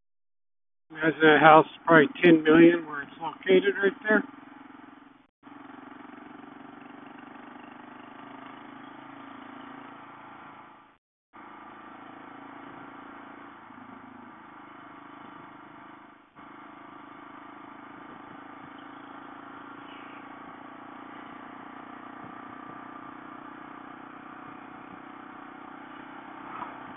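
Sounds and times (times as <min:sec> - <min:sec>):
road noise: 0:00.9 - 0:26.9
motorcycle engine running: 0:01.0 - 0:26.9.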